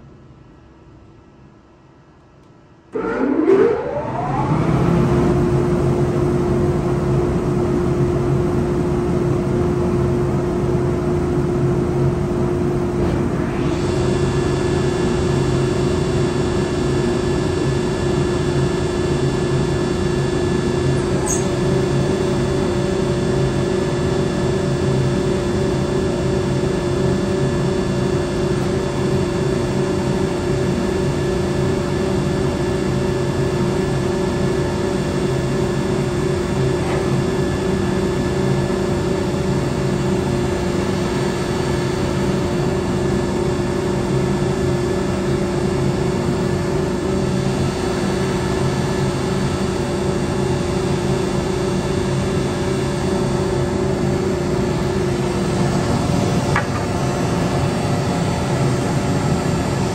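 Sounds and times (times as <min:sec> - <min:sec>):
planer motors whining and humming: 0:02.9 - 0:59.9.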